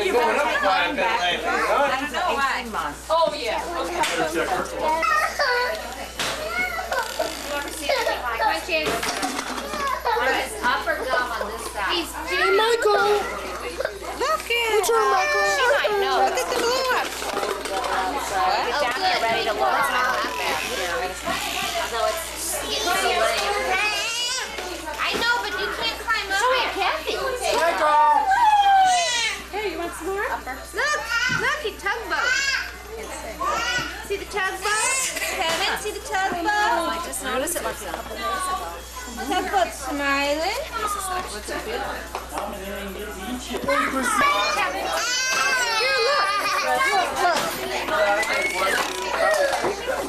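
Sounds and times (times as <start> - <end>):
adults talking: 0.0 - 50.0
children babbling and squealing: 4.8 - 8.6, 9.3 - 11.1, 11.8 - 29.6, 30.8 - 35.8, 43.6 - 50.0.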